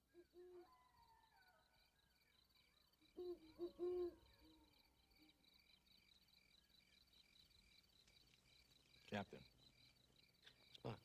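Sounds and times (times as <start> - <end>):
owl hooting: 3.2 - 4.6.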